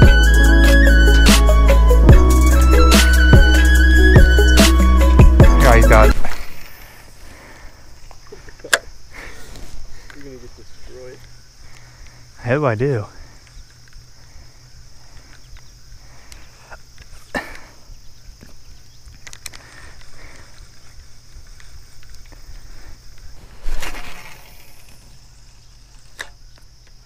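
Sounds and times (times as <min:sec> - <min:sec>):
high insect drone: 0:00.0 - 0:27.0
fishing reel clicks and knocks: 0:25.8 - 0:26.4.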